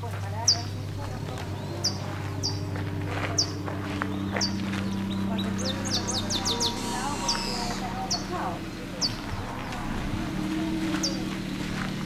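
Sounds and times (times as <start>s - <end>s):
steady low hum: 0.0s - 12.0s
small bird chirping: 0.4s - 9.8s.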